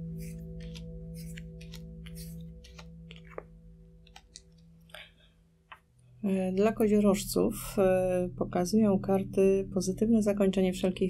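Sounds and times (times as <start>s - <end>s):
soft background music: 0.0s - 11.0s
playing cards clicking and sliding: 0.1s - 3.5s, 4.1s - 4.5s.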